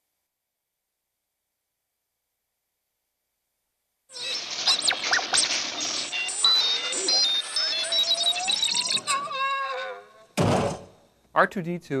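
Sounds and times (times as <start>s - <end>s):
robot electronic beeps and whistles: 4.1s - 10.4s.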